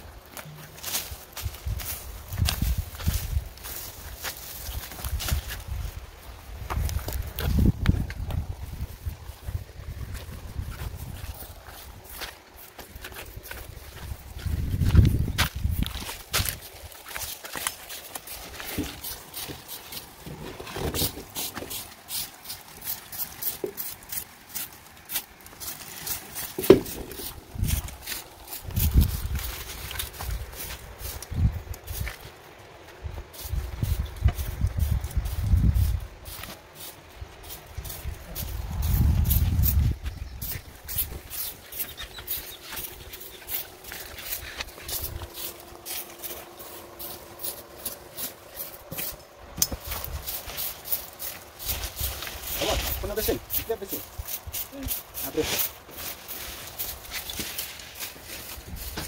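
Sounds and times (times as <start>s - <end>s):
footsteps on dry ground: 0.0s - 59.0s.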